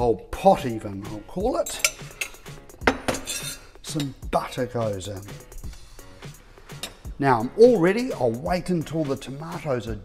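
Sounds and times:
utensils clinking on cookware: 1.6s - 4.2s.

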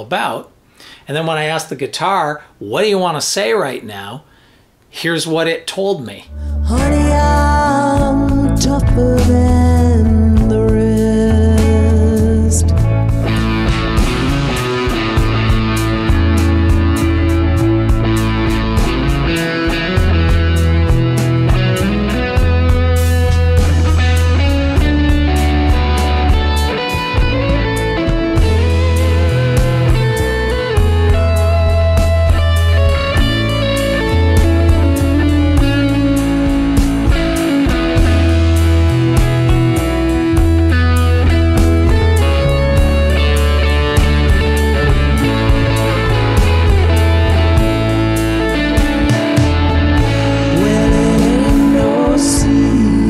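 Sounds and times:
bass: 6.1s - 53.0s
clean electric guitar solo: 6.2s - 53.0s
steady drum beat: 12.8s - 30.2s, 30.8s - 52.9s.

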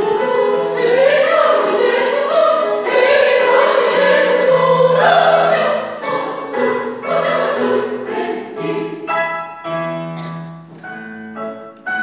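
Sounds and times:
mixed choir singing held chords: 0.0s - 9.4s
digital keyboard accompaniment: 0.0s - 12.0s.

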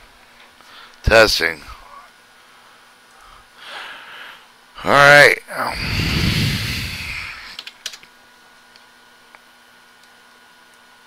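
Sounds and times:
soft rushing noise: 5.6s - 7.6s.

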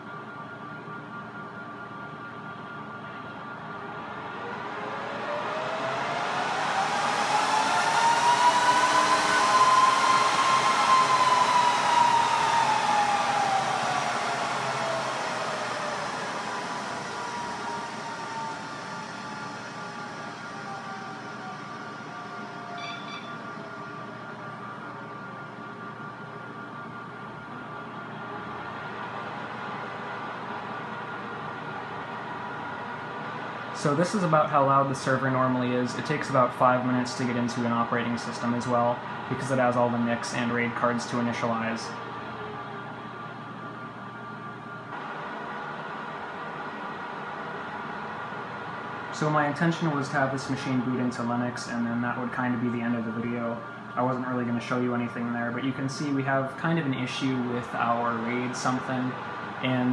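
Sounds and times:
server cooling fans whining: 0.0s - 59.9s.

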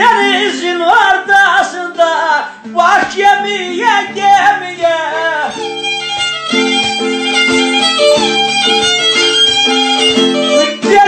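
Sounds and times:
violin playing melody: 5.4s - 11.0s
held chords and steady beat: 5.5s - 11.0s.

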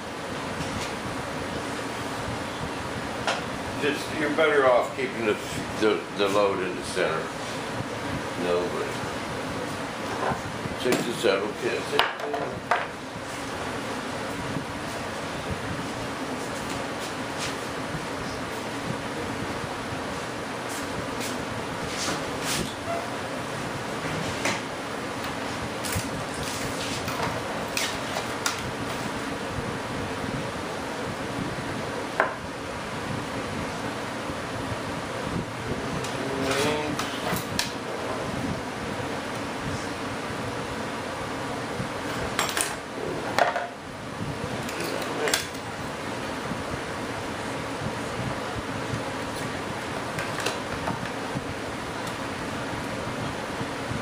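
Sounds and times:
steady hum: 0.0s - 54.0s
objects knocking on workbench: 43.4s - 43.7s.

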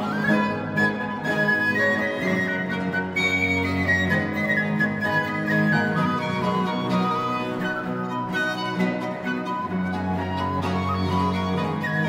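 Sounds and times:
plucked lute: 0.0s - 12.0s
violin: 0.0s - 12.0s
wooden flute melody: 0.0s - 12.0s.

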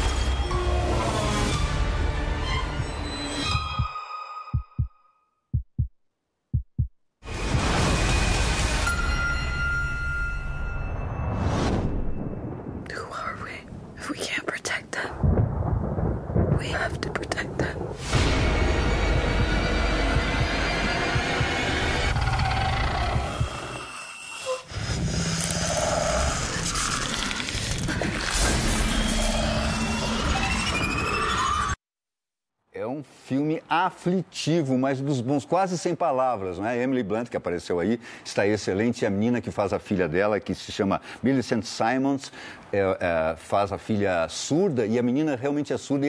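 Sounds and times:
ominous trailer score: 0.0s - 4.9s, 15.2s - 31.8s
low heartbeat-like thumps: 3.5s - 7.7s, 15.1s - 23.7s.

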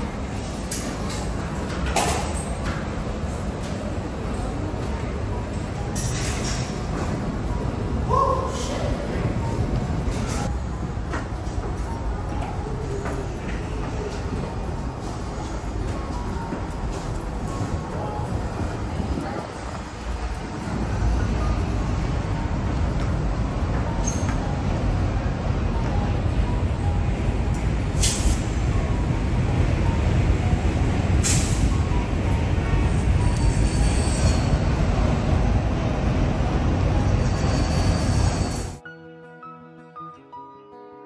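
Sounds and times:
subway train rumble: 0.0s - 38.8s
faint high squeals: 32.9s - 34.7s, 37.1s - 38.8s.

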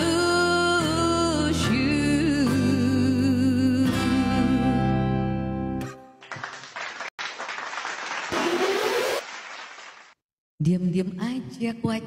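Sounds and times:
applause: 6.2s - 10.2s.

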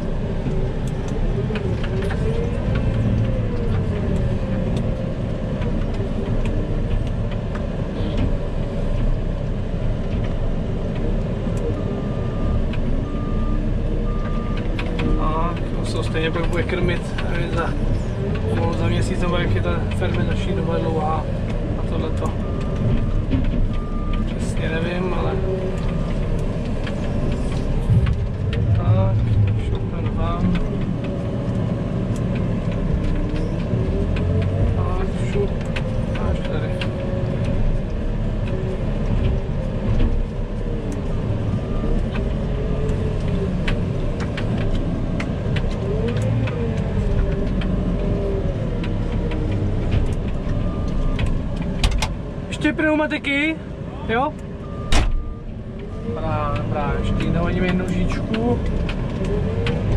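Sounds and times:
diesel engine running: 0.0s - 59.9s.

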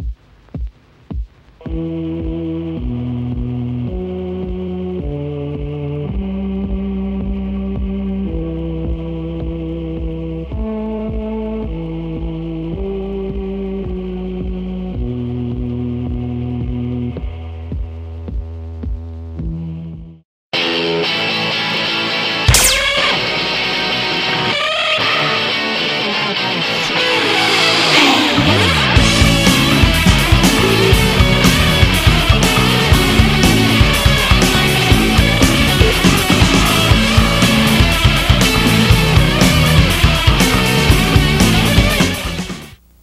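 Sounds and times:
sustained droning chords: 26.6s - 42.4s
throbbing pulse: 27.2s - 42.4s.

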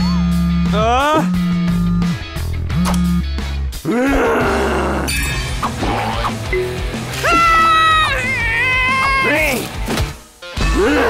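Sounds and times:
background music: 0.0s - 11.0s
cartoon character wailing: 7.2s - 9.4s.

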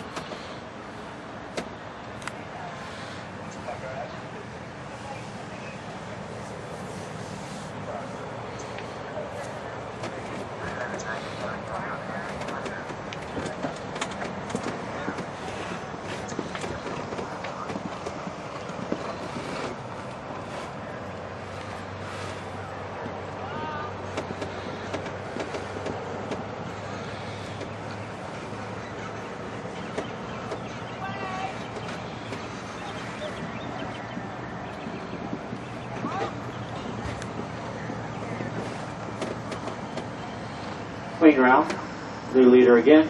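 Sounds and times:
faint voices: 0.0s - 43.0s
steady background noise: 0.0s - 43.0s.

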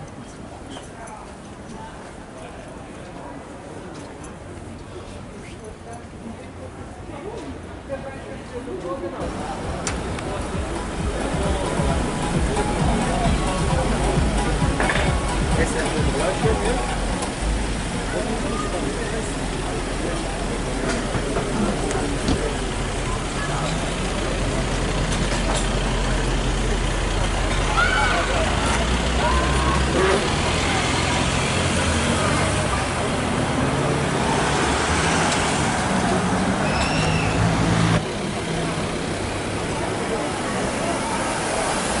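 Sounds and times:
people's voices: 0.0s - 42.0s
car engine revving: 28.3s - 42.0s.

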